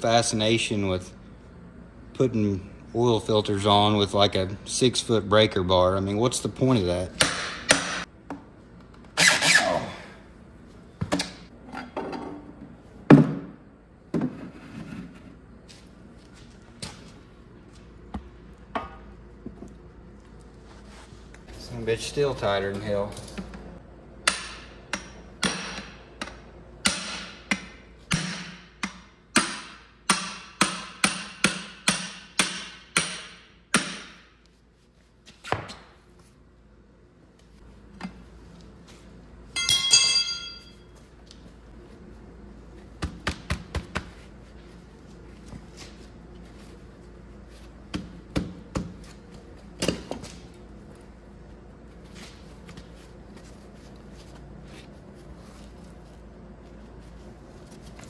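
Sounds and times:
ringing metallic clang: 39.6s - 40.9s.

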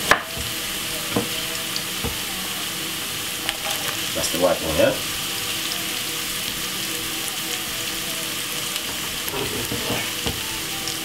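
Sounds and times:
carrots sizzling in hot oil: 0.0s - 11.0s.

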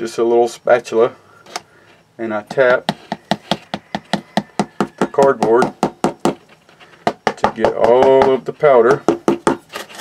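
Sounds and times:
spatula tapping on cardboard: 2.5s - 9.6s.

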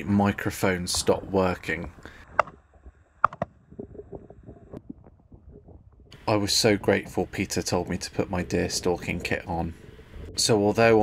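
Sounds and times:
microphone clicking and crackling: 2.2s - 6.2s.

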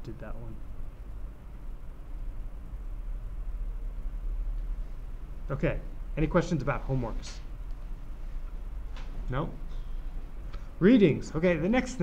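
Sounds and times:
faint background noise: 0.0s - 12.0s
steady low hum: 0.0s - 12.0s.

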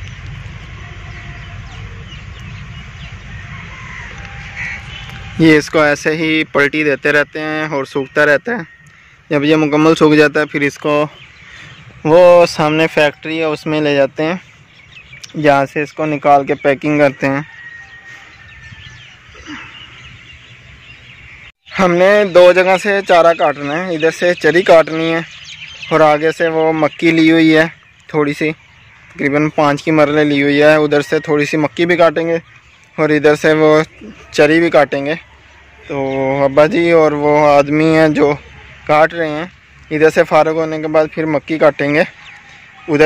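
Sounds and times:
steady low rumble: 0.0s - 5.4s
birds chirping faintly: 0.0s - 43.0s
open-air ambience: 0.0s - 43.0s.

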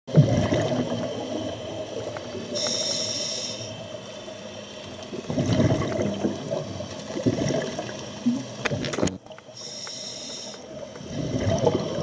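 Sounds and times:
bubbling underwater exhalation: 0.1s - 1.2s, 5.2s - 6.6s, 11.0s - 12.0s
regulator hissing inhalation: 2.6s - 3.8s, 9.6s - 10.7s.

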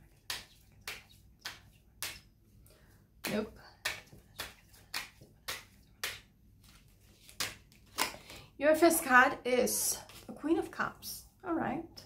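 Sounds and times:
cards being shuffled: 3.2s - 8.5s.

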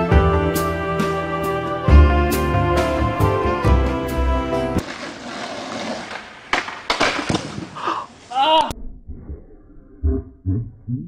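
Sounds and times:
short voice cry: 8.3s - 8.7s.

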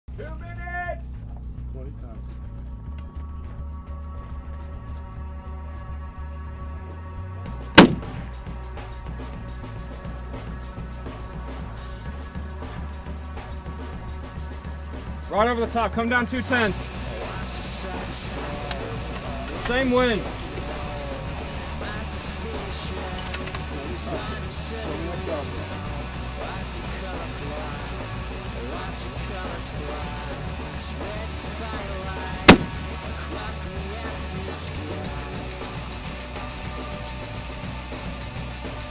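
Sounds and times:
background music: 0.1s - 38.9s
loud rifle shot: 7.8s - 8.2s, 32.5s - 32.8s.

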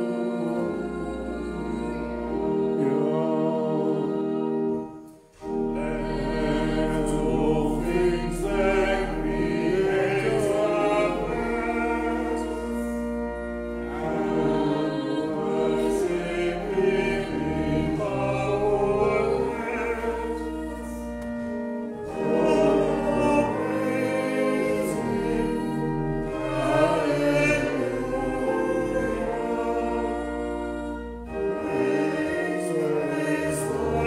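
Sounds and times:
choir singing a hymn: 0.0s - 34.0s
sustained bass chords: 5.4s - 34.0s.

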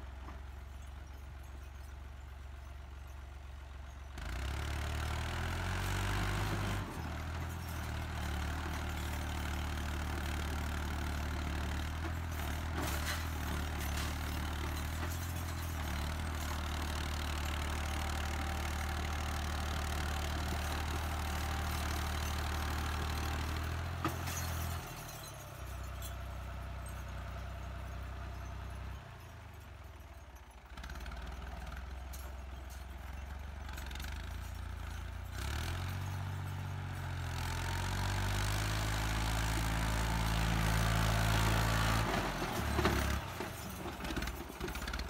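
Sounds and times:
tractor diesel engine droning: 0.0s - 45.0s.

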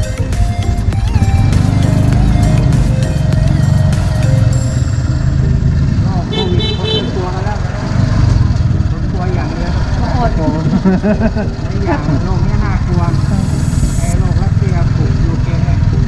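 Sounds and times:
background music: 0.0s - 6.1s, 8.9s - 16.0s
motorcycle engine and road rumble: 0.0s - 16.0s
voices talking: 5.9s - 16.0s.

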